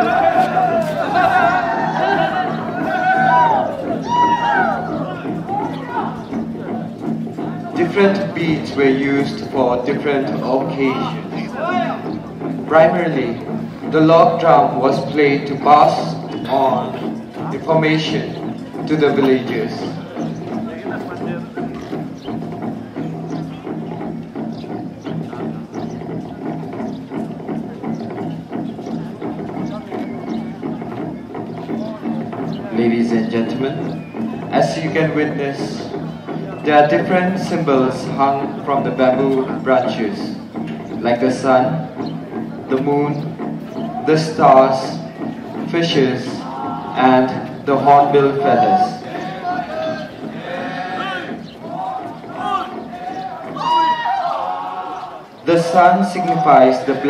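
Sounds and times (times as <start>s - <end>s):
men chanting: 0.0s - 6.2s, 45.9s - 57.0s
men singing a chant: 48.8s - 51.4s.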